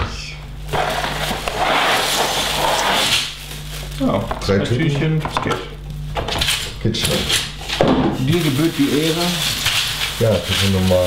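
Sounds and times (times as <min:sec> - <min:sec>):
steady low hum: 0:00.0 - 0:11.0
plastic bags rustling: 0:00.6 - 0:05.1, 0:08.1 - 0:11.0.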